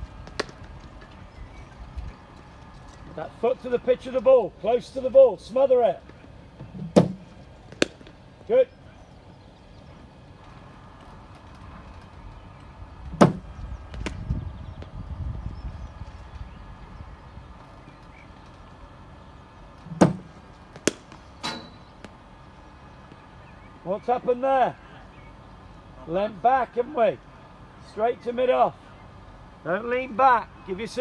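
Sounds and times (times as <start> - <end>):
cricket bat cracking ball: 0.2 - 0.7, 6.9 - 8.2, 19.9 - 21.2.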